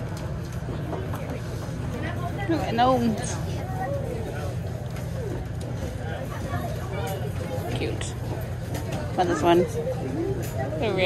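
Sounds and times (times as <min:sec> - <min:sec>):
faint voices of shoppers: 0:00.0 - 0:11.0.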